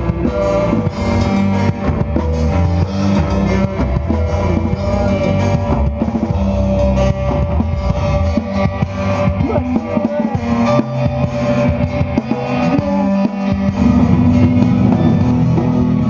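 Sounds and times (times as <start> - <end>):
drum kit beating: 0.0 - 16.0
electric guitars: 0.0 - 16.0.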